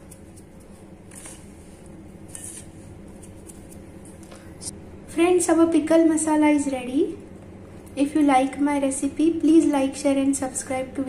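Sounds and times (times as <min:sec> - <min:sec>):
fingers rustling spice powder: 0:00.0 - 0:04.2
steady low hum: 0:00.0 - 0:11.0.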